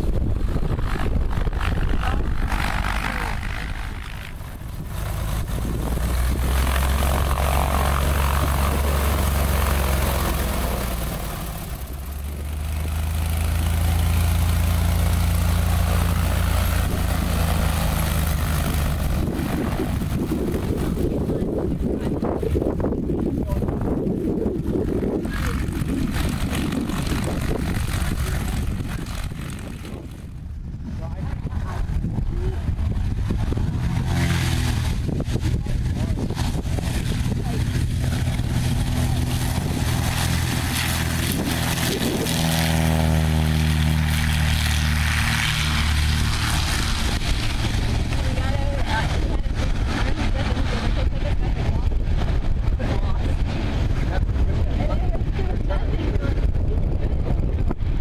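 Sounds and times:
propeller plane engine: 0.0s - 58.0s
wind buffeting microphone: 0.0s - 58.0s.

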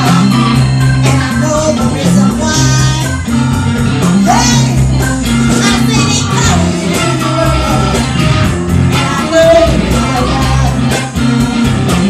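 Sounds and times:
live blues band playing: 0.0s - 12.0s
woman singing into a microphone: 1.0s - 3.2s, 5.5s - 8.2s, 8.9s - 11.0s.

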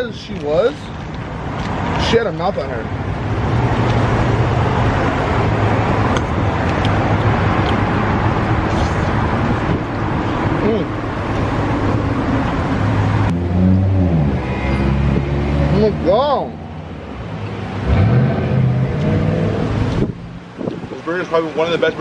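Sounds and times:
road traffic: 0.0s - 22.0s
car engine: 0.4s - 22.0s.

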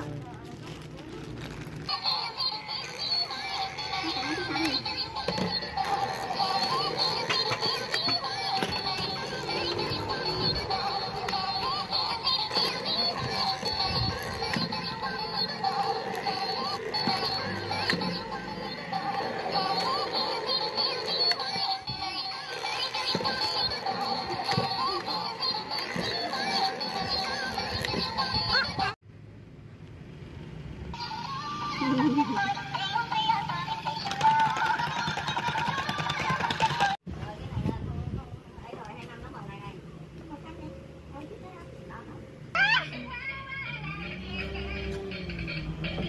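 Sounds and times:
toy electronic tune with singing: 1.9s - 29.0s, 31.0s - 37.0s, 42.9s - 46.0s.

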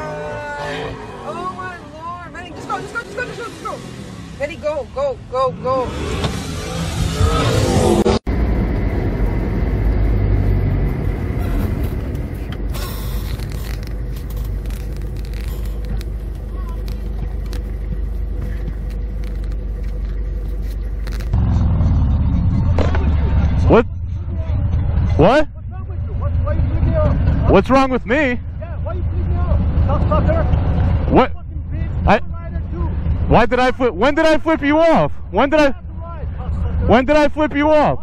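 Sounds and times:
car cabin rumble: 8.4s - 32.9s.

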